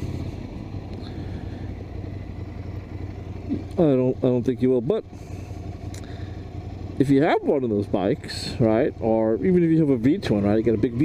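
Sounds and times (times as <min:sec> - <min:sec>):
motorcycle engine idling low: 0:00.0 - 0:11.0.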